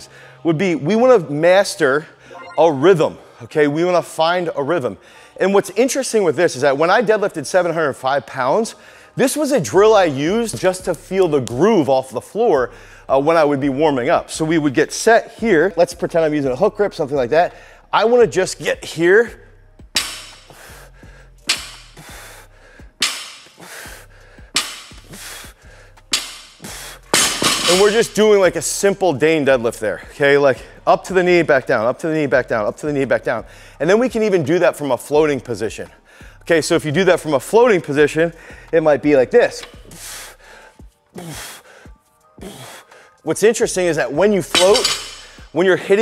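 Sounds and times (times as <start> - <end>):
faint background music: 0.0 - 46.0
man breathing forcefully: 12.7 - 13.1, 20.1 - 27.5, 36.0 - 36.4, 38.4 - 38.7, 39.8 - 43.2, 45.1 - 45.5.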